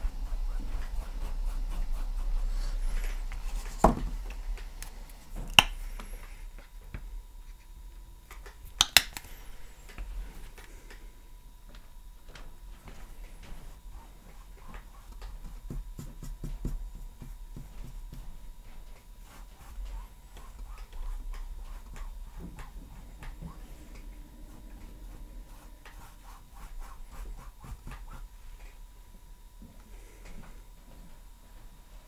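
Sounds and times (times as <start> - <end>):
paintbrush scrubbing on canvas: 0.0 - 4.8, 12.8 - 28.8.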